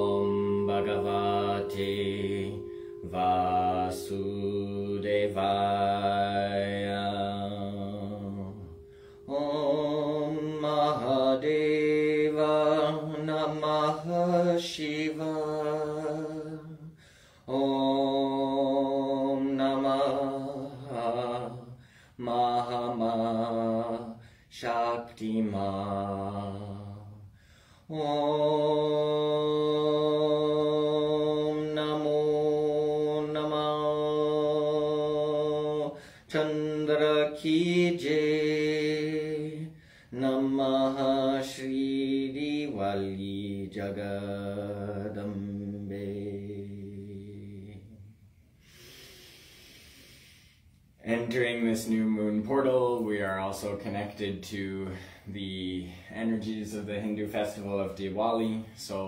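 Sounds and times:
man chanting in long held notes: 0:00.0 - 0:27.3.

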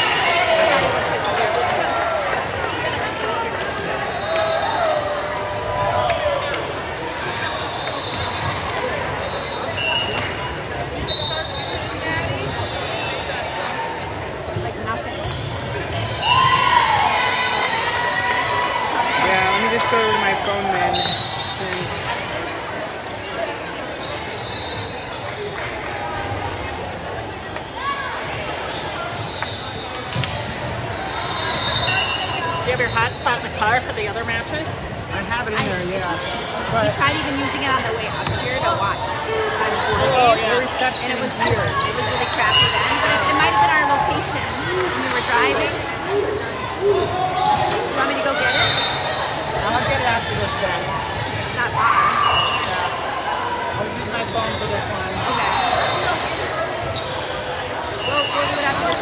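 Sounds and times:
echoing chatter: 0:00.0 - 0:59.0
sneaker squeaks: 0:07.2 - 0:16.7, 0:19.1 - 0:22.0, 0:23.3 - 0:25.3, 0:27.8 - 0:59.0.

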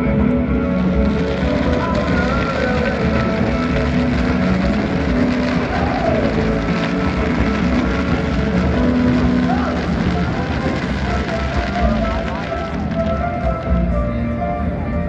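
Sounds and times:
background music with held notes: 0:00.0 - 0:15.0
fireworks crackling: 0:00.0 - 0:15.0.

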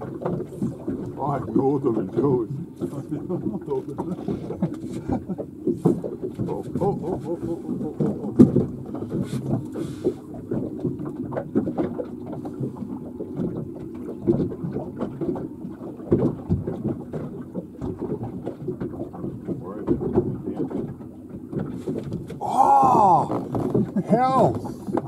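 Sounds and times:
small boat engine rumble: 0:00.0 - 0:25.0
man exclaiming: 0:22.4 - 0:23.4, 0:24.0 - 0:24.6.

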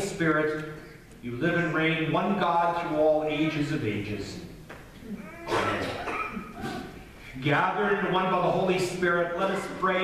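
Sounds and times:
congregation speaking together: 0:05.1 - 0:10.0.

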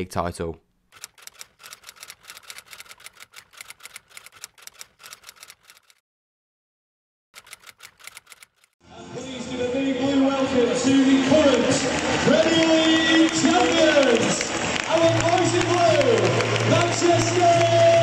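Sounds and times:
stadium crowd noise: 0:08.8 - 0:18.0.

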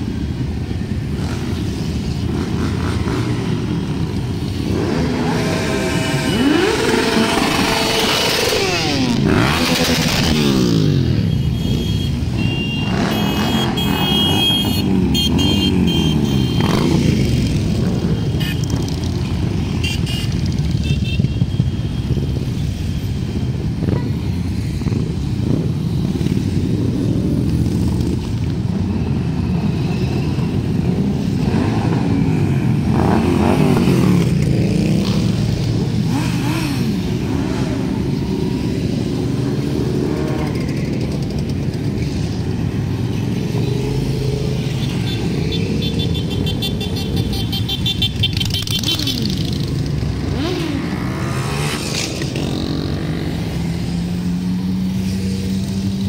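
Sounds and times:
motorcycles riding past: 0:00.0 - 0:56.0.

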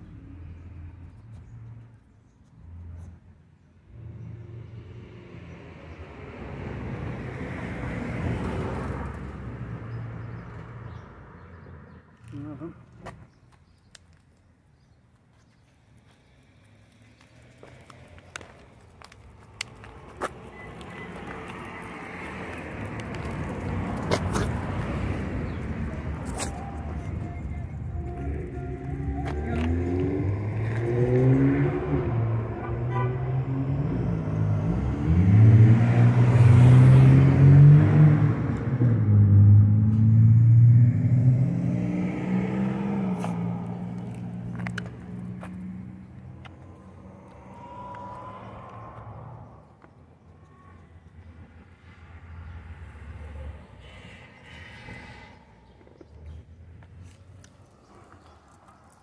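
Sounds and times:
car engine passing: 0:03.9 - 0:12.0, 0:16.4 - 0:59.0.

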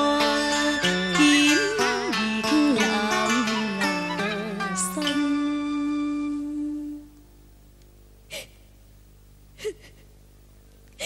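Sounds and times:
woman sobbing: 0:08.3 - 0:08.7, 0:09.6 - 0:10.2.

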